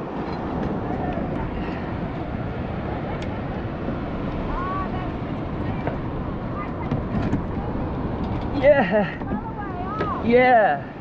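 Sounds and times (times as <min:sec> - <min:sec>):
surf breaking on beach: 0:00.0 - 0:11.0.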